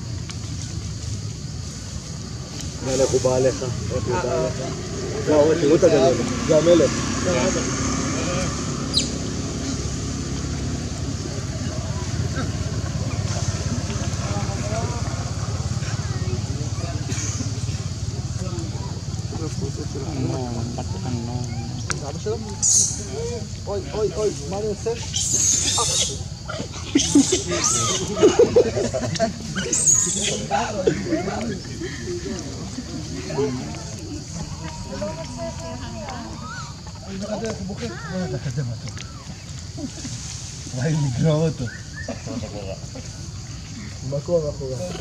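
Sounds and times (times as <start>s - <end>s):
engine idling hum: 0.0s - 24.9s
faint voices: 2.8s - 45.0s
squeaky overlapping calls and chatter: 20.8s - 23.5s, 24.6s - 28.2s, 29.4s - 37.1s.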